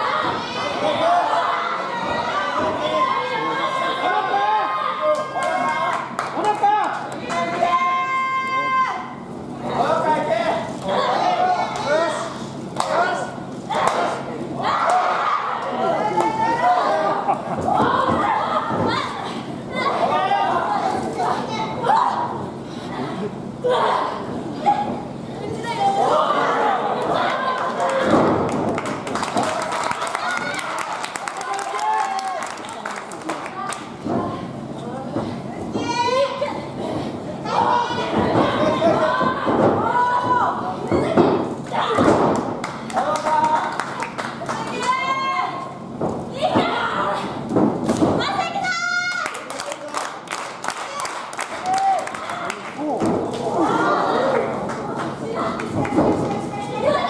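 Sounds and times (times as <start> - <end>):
wrestlers shouting: 37.4 - 42.1.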